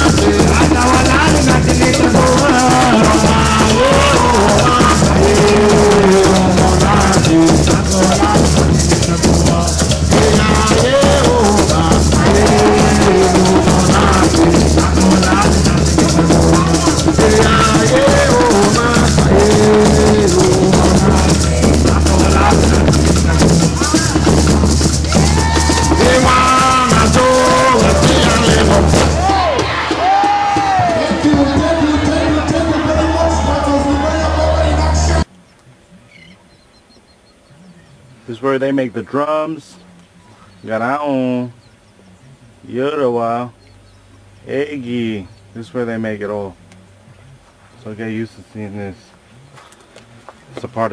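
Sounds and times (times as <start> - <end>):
shakers rattling: 0.0 - 29.2
hand drums beaten: 0.0 - 34.2
voices singing a melody: 0.0 - 35.3.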